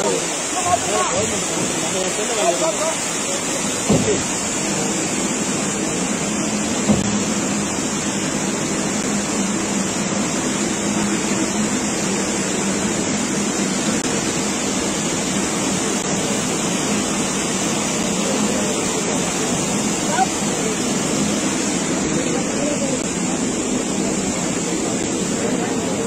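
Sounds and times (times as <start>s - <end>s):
water rushing: 0.0s - 26.0s
brief knock: 3.9s - 4.2s.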